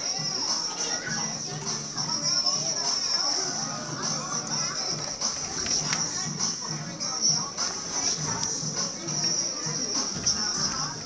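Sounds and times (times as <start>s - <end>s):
children chattering and calling out: 0.0s - 11.0s
dance music: 0.0s - 11.0s.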